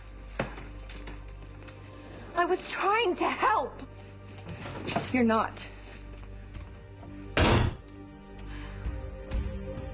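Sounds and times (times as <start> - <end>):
quiet background music: 0.0 - 9.9
door slamming: 7.4 - 7.8.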